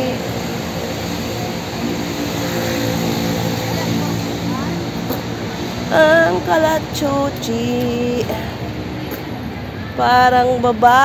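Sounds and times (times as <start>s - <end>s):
background rush: 0.0s - 11.0s
engine humming: 0.0s - 11.0s.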